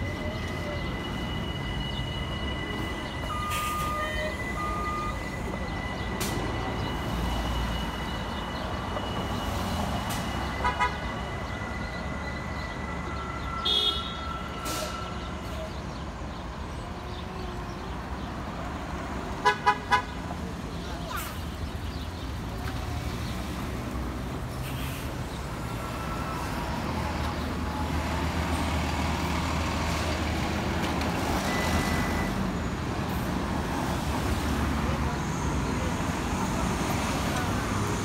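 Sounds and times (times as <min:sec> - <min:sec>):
bus engines rumbling: 0:00.0 - 0:38.0
vehicle horn toots: 0:10.6 - 0:11.2, 0:13.6 - 0:14.3.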